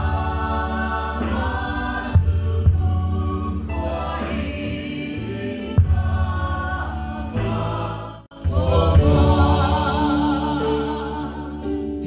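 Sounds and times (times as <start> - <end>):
singers singing: 0.0 - 12.0
worship band playing: 0.0 - 12.0.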